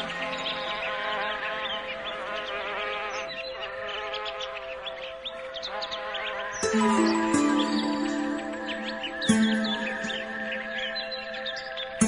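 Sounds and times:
bird chirps: 0.0s - 12.0s
soft relaxation music: 0.0s - 12.0s.

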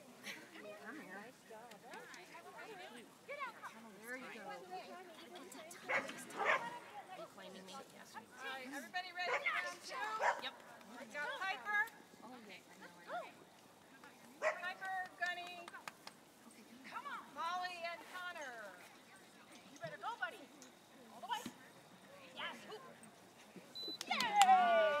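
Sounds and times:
people talking: 0.2s - 25.0s
dog barking: 5.9s - 6.8s, 10.2s - 10.4s, 14.4s - 14.6s.

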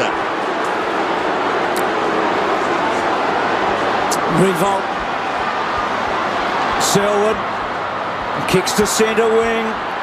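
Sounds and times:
stadium crowd cheering: 0.0s - 10.0s.

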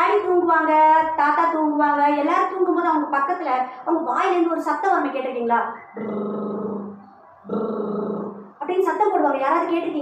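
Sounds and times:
woman imitating snoring: 7.5s - 8.4s.

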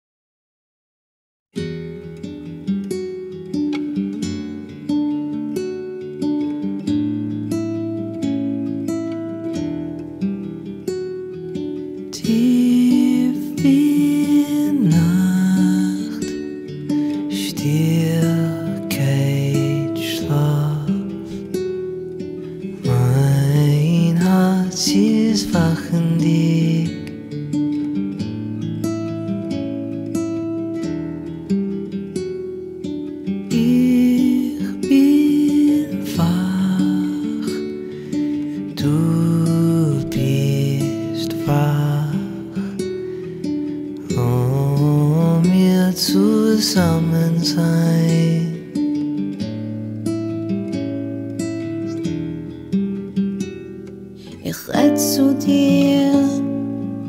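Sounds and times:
acoustic guitar picking notes: 1.6s - 57.0s
person singing: 12.0s - 21.6s, 22.4s - 27.5s, 33.4s - 49.2s, 54.2s - 57.0s.

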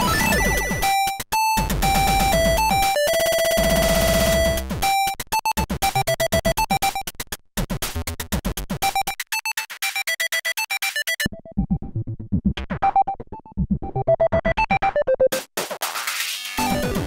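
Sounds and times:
chiptune synth pattern: 0.0s - 6.8s, 16.6s - 17.0s.

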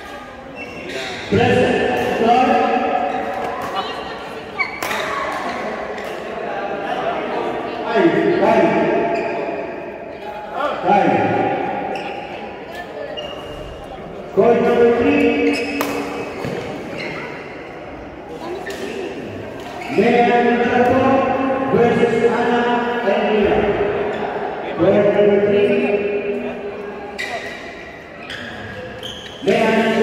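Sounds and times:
racket hitting shuttlecock: 15.6s - 16.7s.

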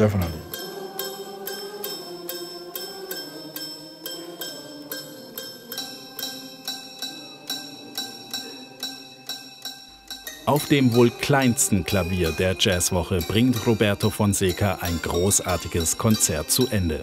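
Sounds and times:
toy piano notes: 0.0s - 17.0s.

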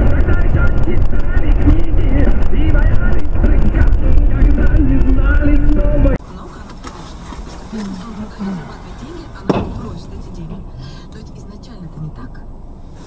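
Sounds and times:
person's voice: 0.0s - 6.8s, 7.7s - 12.4s
muffled car rumble from inside: 0.0s - 13.0s.

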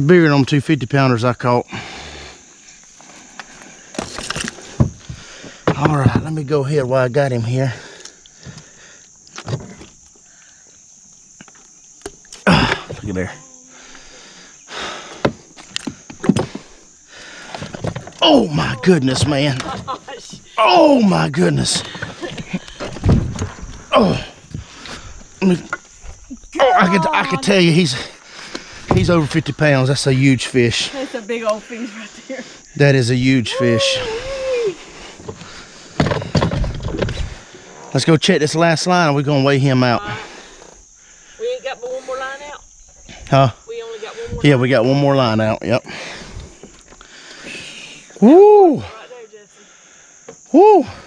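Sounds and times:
steady high hiss: 0.0s - 36.2s
handling knock and rustle: 17.5s - 18.2s, 35.2s - 37.4s.

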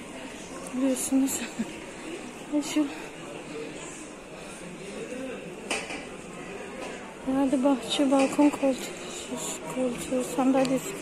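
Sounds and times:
murmur and clatter of busy hall: 0.0s - 11.0s.

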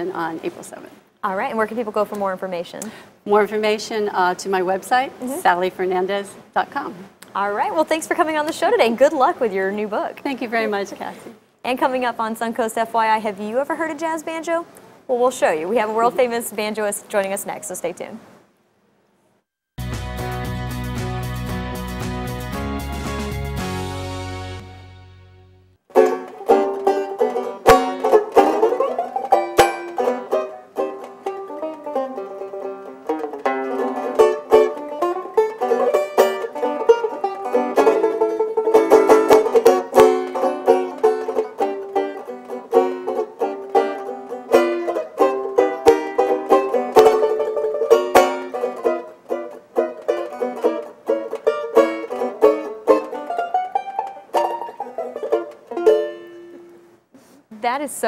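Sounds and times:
banjo playing jazz: 19.8s - 57.8s.

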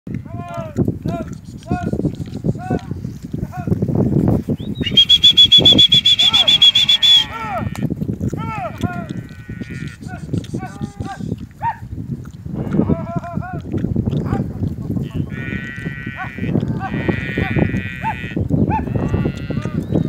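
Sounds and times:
rapid high-pitched calves calls: 0.1s - 3.6s, 4.5s - 7.9s, 8.6s - 13.8s, 15.2s - 20.0s
cows and calves calling: 0.1s - 3.8s, 4.5s - 20.0s.

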